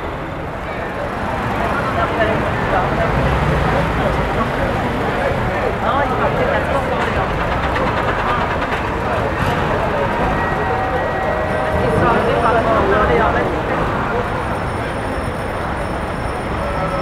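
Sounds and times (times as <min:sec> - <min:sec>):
military vehicle engines rumbling: 0:00.0 - 0:17.0
people's voices: 0:00.0 - 0:17.0.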